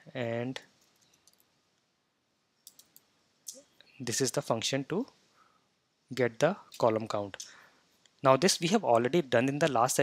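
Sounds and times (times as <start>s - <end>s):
keyboard clicks: 2.6s - 3.6s.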